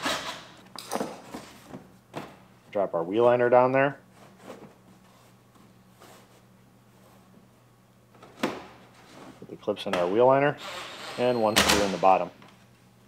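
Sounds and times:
steady low hum: 0.4 - 13.0.

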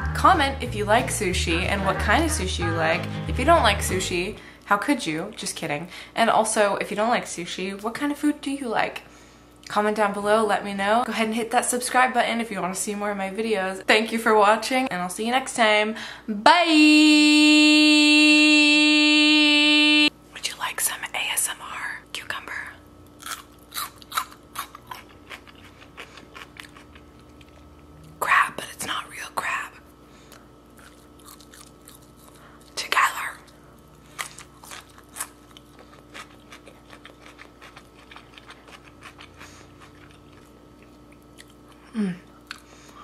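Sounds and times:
loud steady tone: 0.0 - 4.4, 16.4 - 20.1
close-up chewing: 23.2 - 28.2, 30.3 - 43.0.

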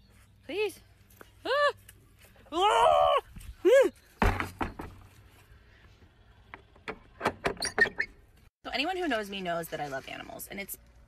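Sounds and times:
short squeak: 7.6 - 8.2.

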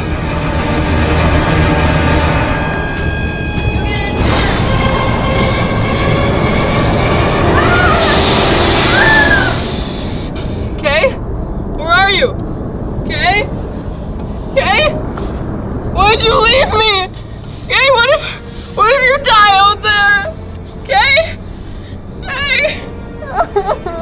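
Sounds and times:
loud rushing storm-like noise: 0.0 - 23.6
low rumble: 0.0 - 24.0.

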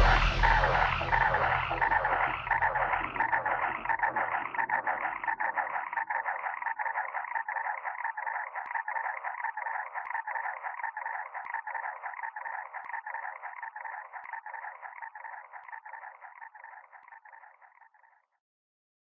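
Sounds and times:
fluttering crackly electronic texture: 0.0 - 18.2.

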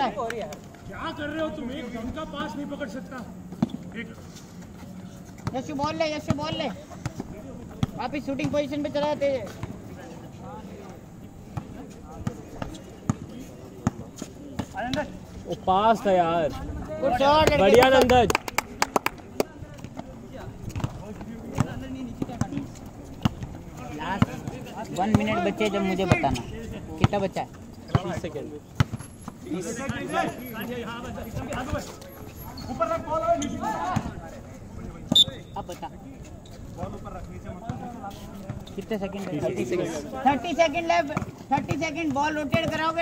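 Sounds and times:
shoes hitting concrete court: 0.0 - 43.0
basketball bouncing: 27.9 - 30.0.

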